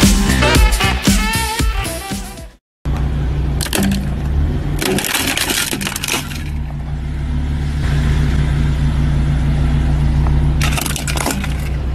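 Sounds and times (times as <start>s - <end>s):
car engine humming: 2.8s - 11.9s
plastic cracking under tyre: 4.8s - 6.7s.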